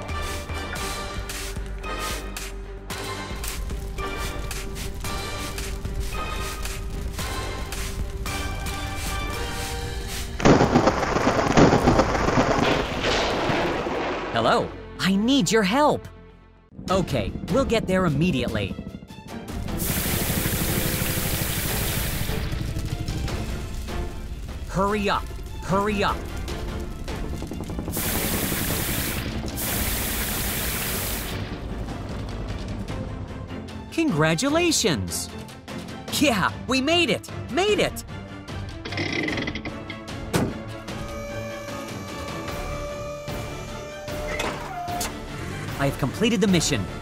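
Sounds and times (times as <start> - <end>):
background music: 0.0 - 47.0
rushing crackling noise effect: 3.4 - 14.5, 19.5 - 33.1.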